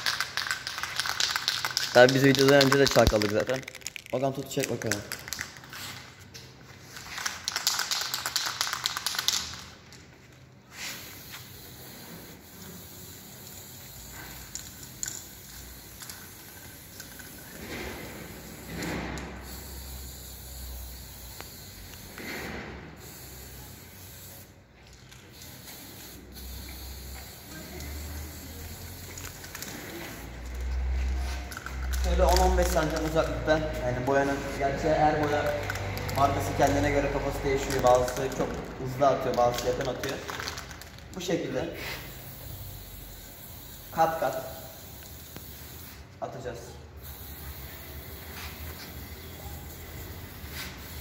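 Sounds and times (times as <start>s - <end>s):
spray paint can hissing: 0.0s - 6.1s, 6.8s - 9.8s, 10.7s - 41.2s, 41.8s - 46.2s, 47.0s - 51.0s.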